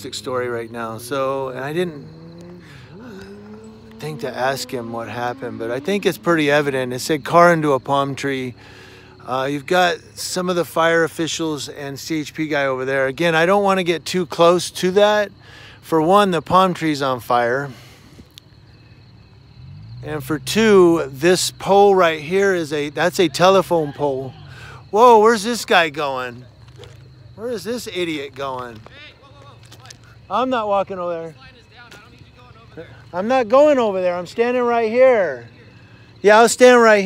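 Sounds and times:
car engine hum: 0.0s - 37.0s.

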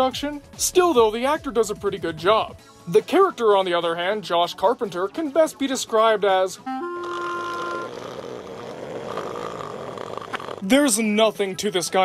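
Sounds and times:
short steady tone: 6.7s - 8.0s.

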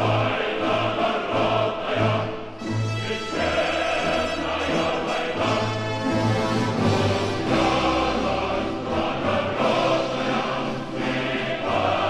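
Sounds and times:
choir singing held notes: 0.0s - 12.0s.

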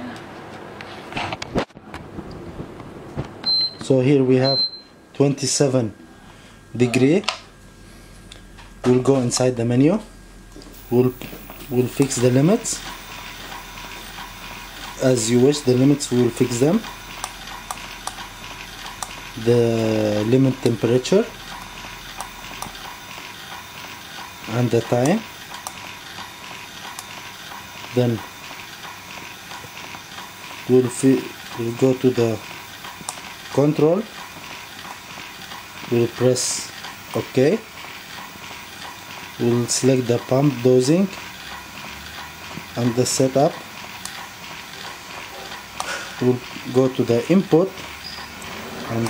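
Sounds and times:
steady background hum: 0.0s - 49.0s.

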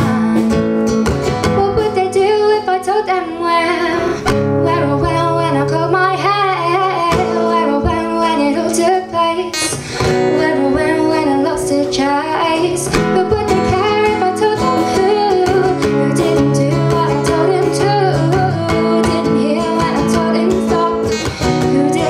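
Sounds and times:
strummed acoustic guitar: 0.0s - 22.0s
woman singing: 0.0s - 22.0s.

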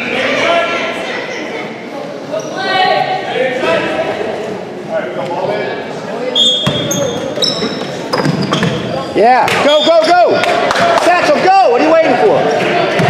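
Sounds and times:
voices echoing in a gym: 0.0s - 13.0s
sneakers squeaking on hardwood: 6.4s - 10.2s.

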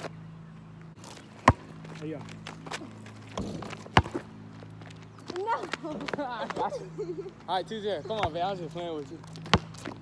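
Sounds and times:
basketball bouncing on asphalt: 1.0s - 6.7s, 8.1s - 10.0s.

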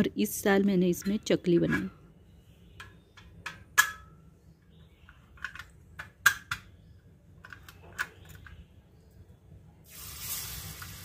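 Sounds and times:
metal parts clicking and clinking: 5.1s - 6.7s.

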